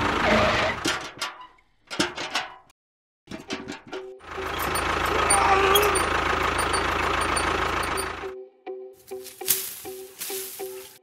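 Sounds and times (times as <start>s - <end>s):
tractor engine running: 0.0s - 1.2s, 3.3s - 11.0s.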